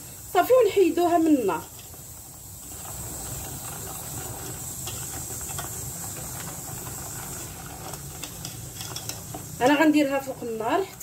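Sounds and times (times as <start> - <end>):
spoon stirring thick glaze: 1.0 - 11.0.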